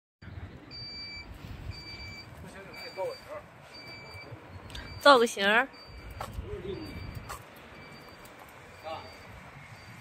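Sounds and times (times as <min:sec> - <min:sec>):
electronic beeper beeping: 0:00.7 - 0:10.0.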